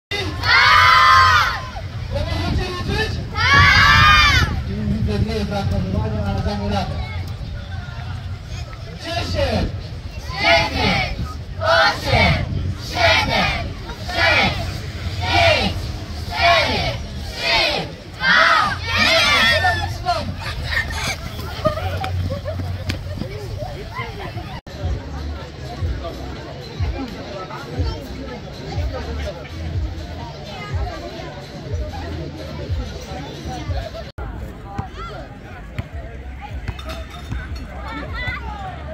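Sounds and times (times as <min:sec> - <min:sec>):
children shouting and cheering: 0:00.3 - 0:01.9, 0:03.3 - 0:04.6, 0:16.4 - 0:22.2
children yelling: 0:00.4 - 0:01.8, 0:03.4 - 0:04.6.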